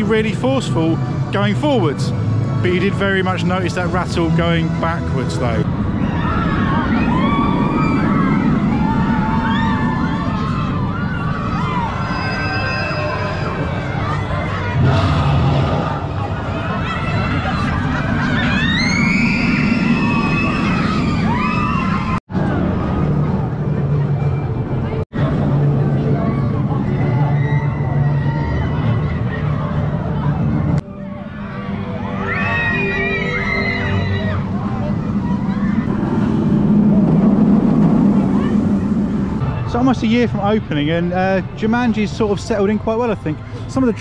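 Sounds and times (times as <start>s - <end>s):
babble of crowd: 0.0s - 21.1s, 22.3s - 44.0s
roller coaster running: 0.0s - 44.0s.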